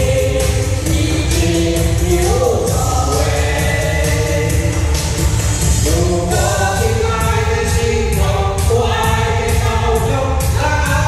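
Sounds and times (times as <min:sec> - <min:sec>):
people singing over backing track: 0:00.0 - 0:11.0.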